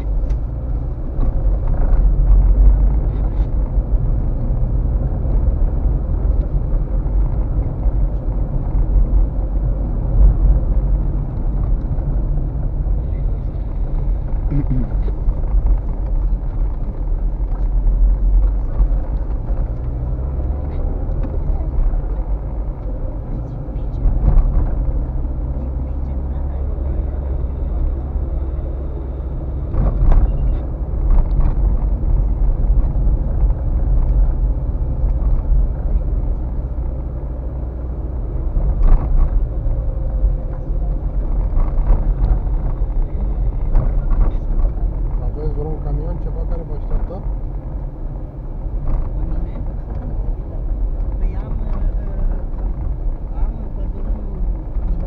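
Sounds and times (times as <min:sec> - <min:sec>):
tyres and engine rumbling: 0:00.0 - 0:55.0.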